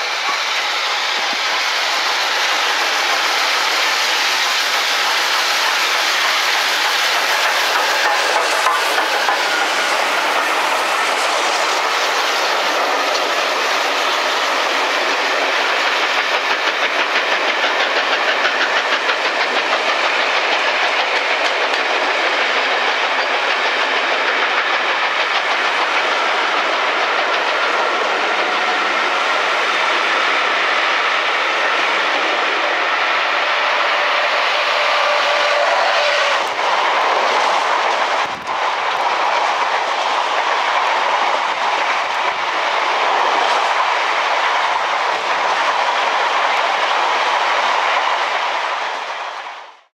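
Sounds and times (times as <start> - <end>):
train wheels rolling on rails: 0.0 - 49.9.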